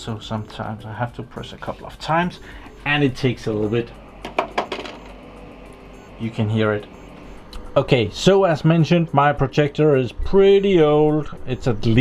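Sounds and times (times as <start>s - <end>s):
projector hum: 0.0s - 12.0s.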